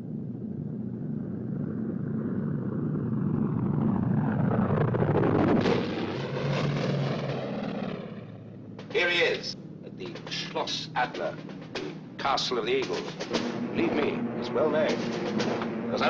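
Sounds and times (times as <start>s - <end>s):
propeller plane engines droning: 0.0s - 16.0s.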